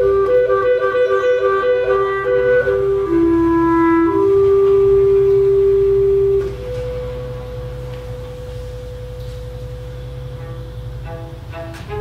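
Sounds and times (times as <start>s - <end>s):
clarinet held note: 0.0s - 8.4s.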